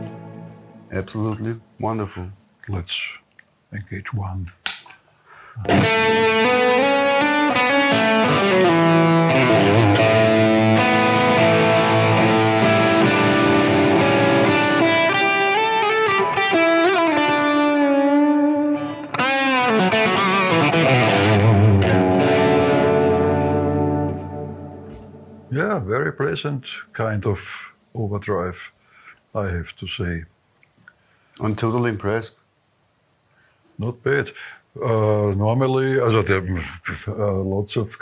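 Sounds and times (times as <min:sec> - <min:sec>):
overdriven electric guitar lead: 0:05.6 - 0:25.5.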